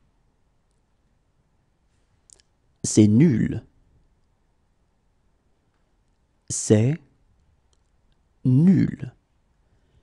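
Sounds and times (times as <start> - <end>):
person speaking: 2.2 - 3.8, 6.4 - 7.2, 8.4 - 9.2.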